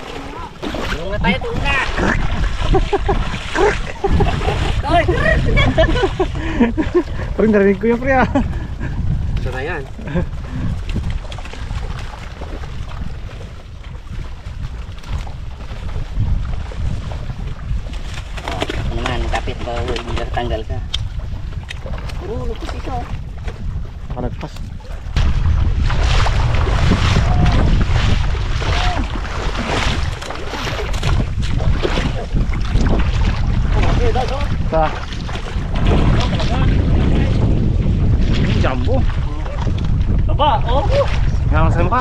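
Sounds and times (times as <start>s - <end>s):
water splashing and sloshing: 0.0s - 42.0s
wind rumble on microphone: 0.0s - 42.0s.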